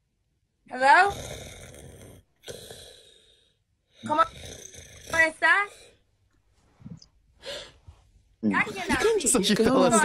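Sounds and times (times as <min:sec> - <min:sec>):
person snoring: 0:01.0 - 0:06.0.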